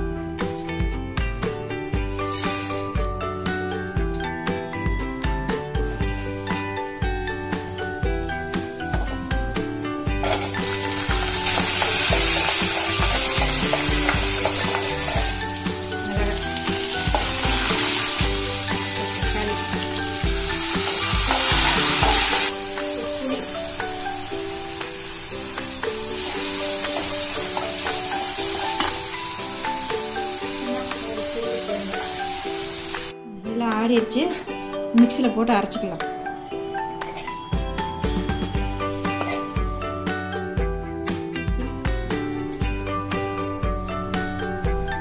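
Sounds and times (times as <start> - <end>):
background music with steady beat: 0.0 - 45.0
food frying in oil: 6.0 - 33.1.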